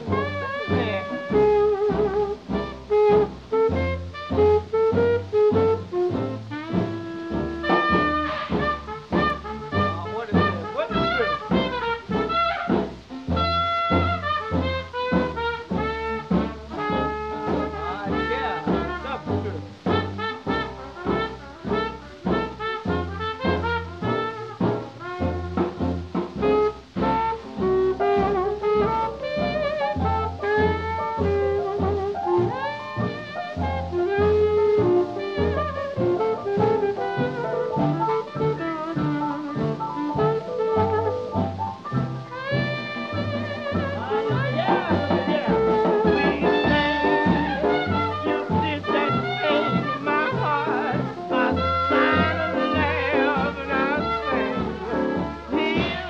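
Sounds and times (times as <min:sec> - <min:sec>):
swing dance band with brass: 0:00.0 - 0:56.0.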